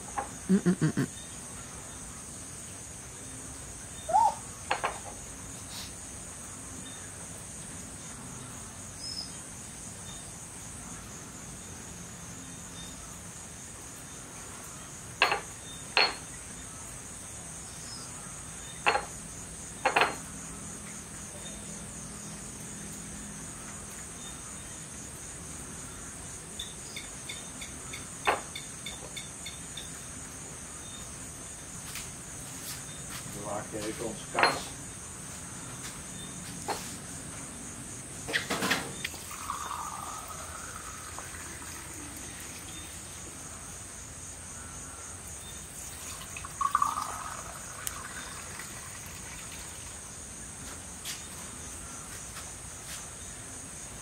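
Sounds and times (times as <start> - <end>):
night insects chirring: 0.0 - 54.0.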